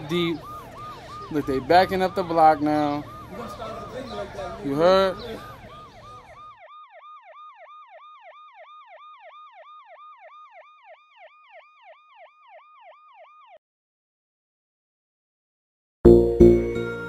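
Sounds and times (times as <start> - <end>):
street noise: 0.0 - 8.4
police siren yelping: 0.0 - 13.6.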